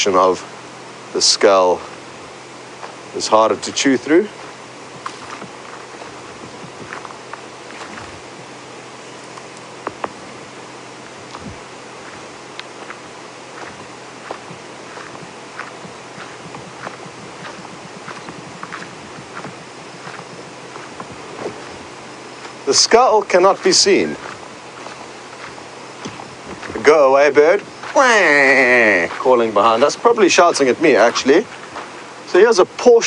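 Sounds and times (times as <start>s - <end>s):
steady background hiss: 0.0s - 33.0s
footsteps on leaves and twigs: 0.2s - 33.0s.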